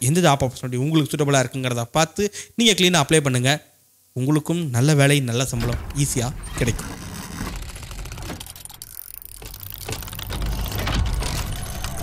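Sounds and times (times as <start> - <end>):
rapid mechanical clicking: 5.6 - 12.0.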